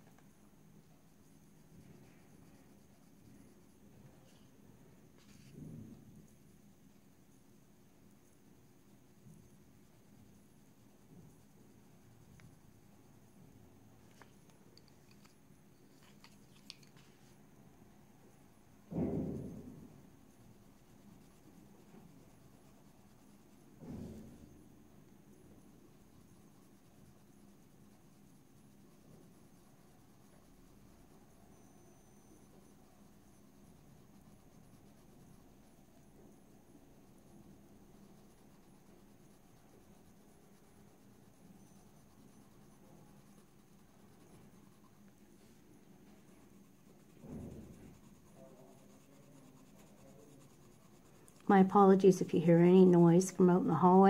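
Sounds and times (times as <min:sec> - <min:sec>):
pencil scratching on paper: 0:00.8 - 0:04.5, 0:05.1 - 0:05.6, 0:08.6 - 0:13.3, 0:14.0 - 0:17.4, 0:18.9 - 0:24.6, 0:25.2 - 0:54.0.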